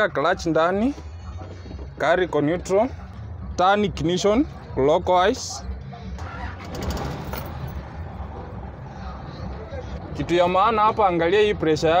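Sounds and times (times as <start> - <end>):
truck diesel engine starting: 6.2 - 7.7.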